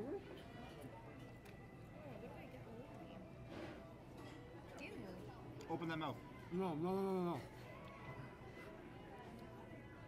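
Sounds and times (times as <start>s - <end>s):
faint background chatter: 0.0s - 10.0s
faint music: 0.0s - 10.0s.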